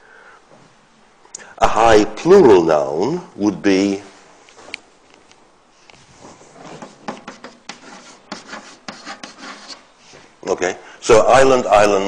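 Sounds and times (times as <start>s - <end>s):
scratchy writing on a board: 6.6s - 9.9s.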